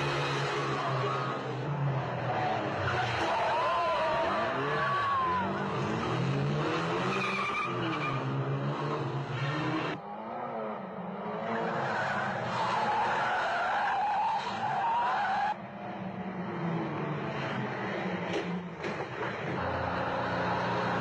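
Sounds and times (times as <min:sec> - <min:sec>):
car engines revving hard: 0:00.0 - 0:21.0.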